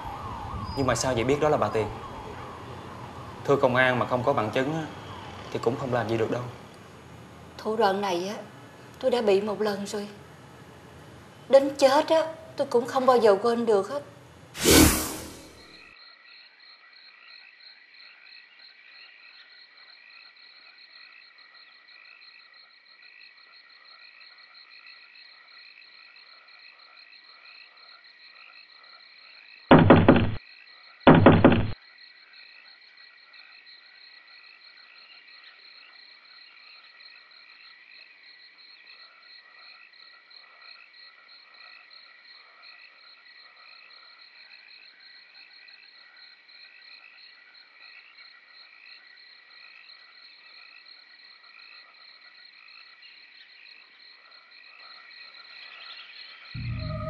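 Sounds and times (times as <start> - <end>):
insects chirping: 0.0 - 57.0
frogs calling: 15.6 - 57.0
loud knocks: 29.7 - 30.4, 31.1 - 31.8.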